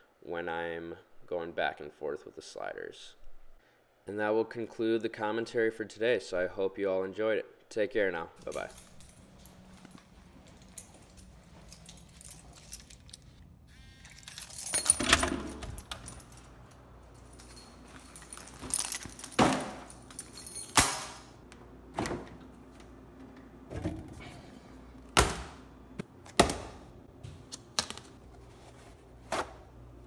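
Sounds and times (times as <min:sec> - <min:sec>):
keys jangling: 0:08.4 - 0:13.4, 0:14.0 - 0:21.4
door being unlocked and opened: 0:14.0 - 0:16.6.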